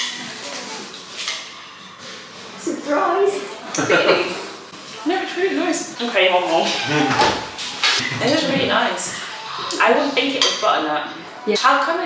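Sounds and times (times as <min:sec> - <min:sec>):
woman laughing: 0:03.8 - 0:04.4.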